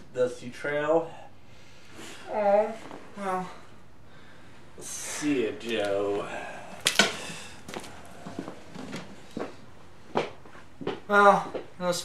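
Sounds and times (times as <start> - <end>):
soft footsteps walking away: 6.8 - 11.8.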